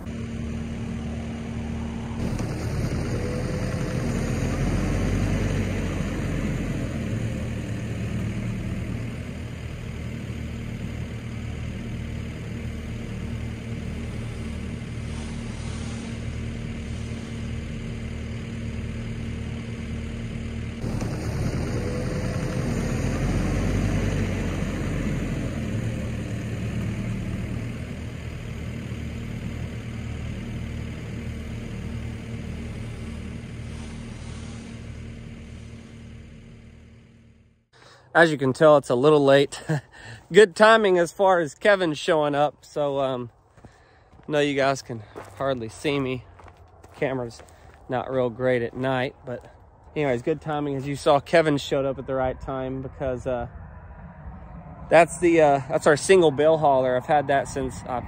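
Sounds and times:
loader engine running: 0:00.0 - 0:58.0.

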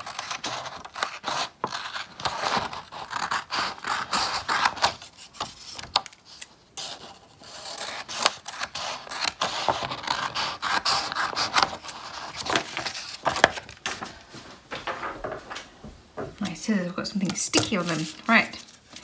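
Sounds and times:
scissors snipping paper: 0:00.0 - 0:13.8.

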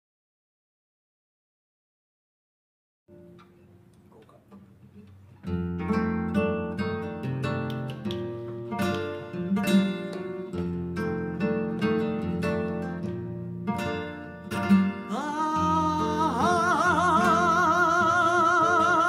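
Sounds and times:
flamenco guitar: 0:03.1 - 0:19.0.

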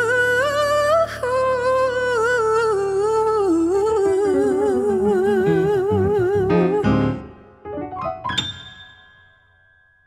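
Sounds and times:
woman singing with vibrato: 0:00.0 - 0:07.3
grand piano accompaniment: 0:04.0 - 0:10.0.

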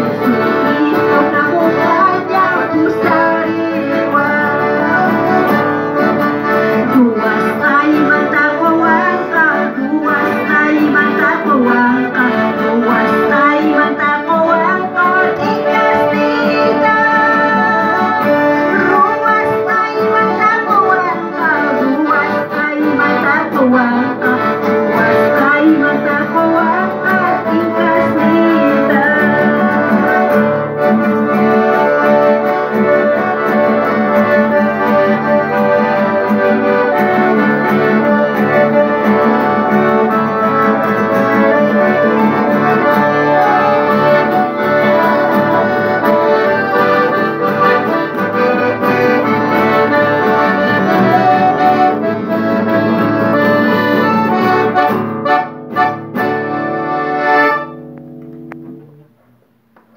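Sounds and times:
accordion playing hymn melody: 0:00.0 - 0:58.9.

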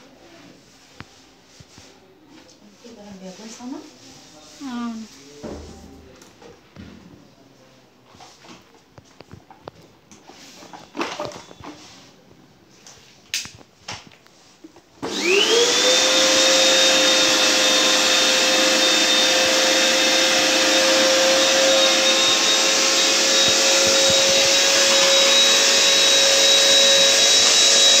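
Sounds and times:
vacuum cleaner motor whine: 0:15.0 - 0:28.0.

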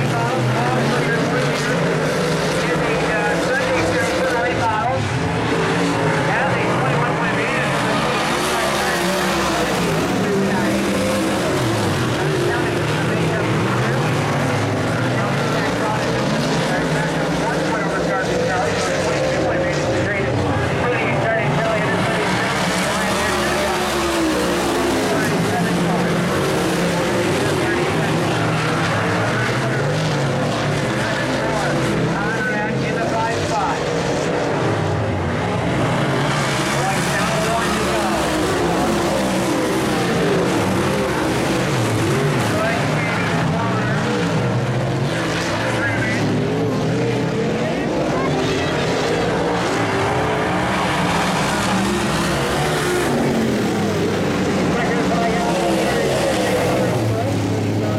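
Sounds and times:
race car engines passing by: 0:00.0 - 0:57.9.

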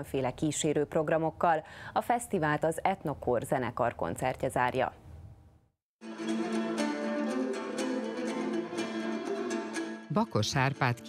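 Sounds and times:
violin playing: 0:06.0 - 0:11.0.

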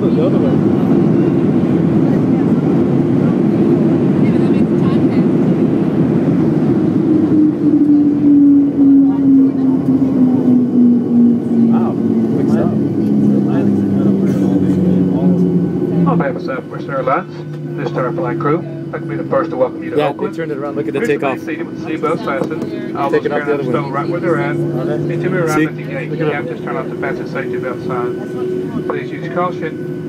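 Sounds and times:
jet engines winding down: 0:00.0 - 0:30.0.

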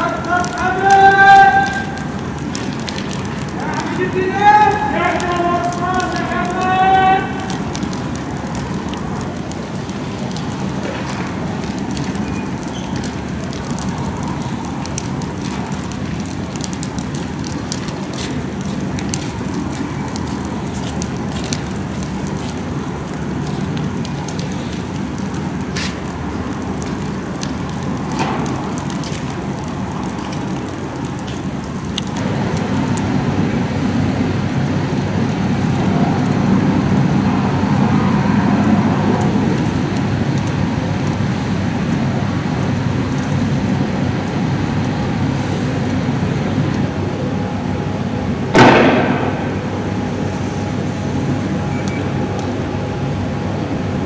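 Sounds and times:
fire crackling: 0:00.0 - 0:54.0.

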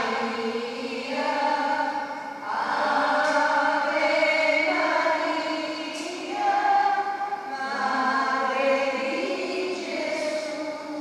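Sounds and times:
church choir singing a hymn: 0:00.0 - 0:11.0.

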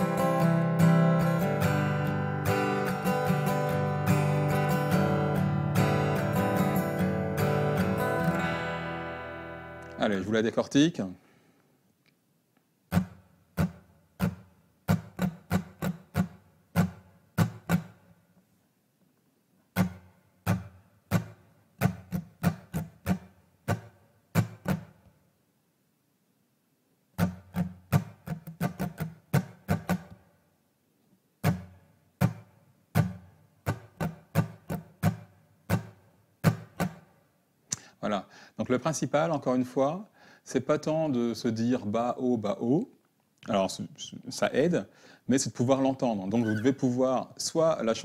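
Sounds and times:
acoustic guitar strumming: 0:00.0 - 0:10.3, 0:12.9 - 0:18.2, 0:19.7 - 0:25.0, 0:27.2 - 0:30.3, 0:31.4 - 0:37.8.

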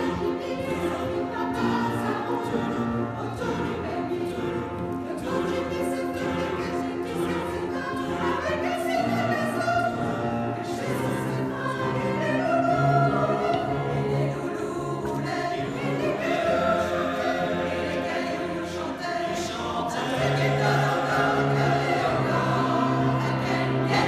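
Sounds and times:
mixed choir singing: 0:00.0 - 0:24.0.

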